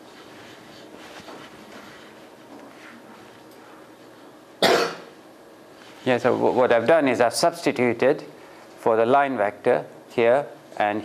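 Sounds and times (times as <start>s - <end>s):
faint room noise: 0.0s - 11.0s
person coughing: 4.6s - 5.2s.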